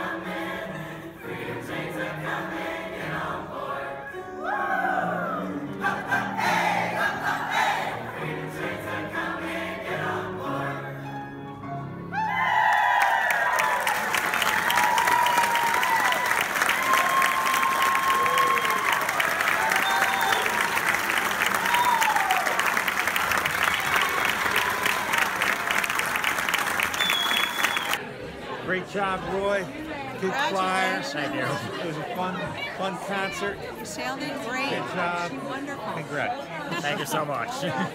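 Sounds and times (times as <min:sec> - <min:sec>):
choir singing: 0:00.0 - 0:11.5
audience applause and cheering: 0:12.1 - 0:28.0.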